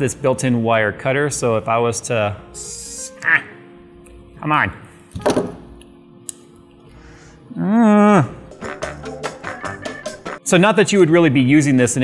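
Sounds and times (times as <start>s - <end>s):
faint background music: 0.0s - 12.0s
person grunting: 7.5s - 8.4s.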